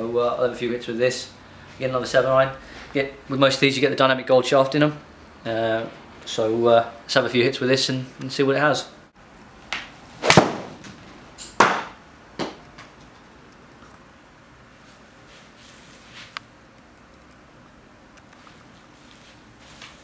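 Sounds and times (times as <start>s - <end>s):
golf club striking ball: 10.2s - 10.9s.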